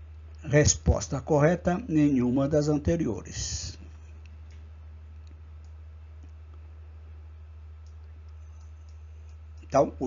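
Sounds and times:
low electrical hum: 0.0 - 10.0
faint clicks: 4.1 - 6.7, 7.7 - 9.8.

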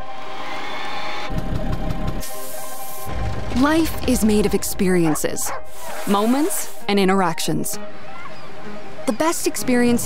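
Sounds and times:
motor scooter engine: 1.3 - 2.3, 3.0 - 4.5
music with held tones: 5.6 - 10.0.

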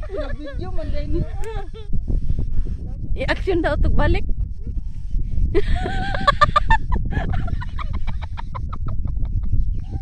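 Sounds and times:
woman laughing hard: 5.6 - 9.6.

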